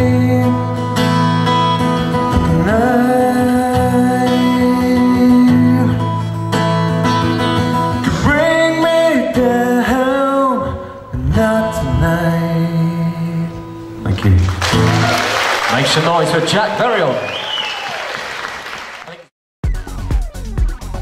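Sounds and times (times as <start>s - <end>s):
man singing: 0.0s - 1.1s, 2.2s - 6.2s, 8.0s - 13.6s
strummed acoustic guitar: 0.0s - 15.2s.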